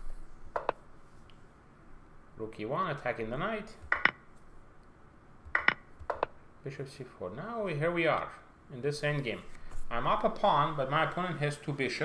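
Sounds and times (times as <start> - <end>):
computer clicks: 0.6 - 0.8, 3.8 - 4.2, 5.5 - 6.4.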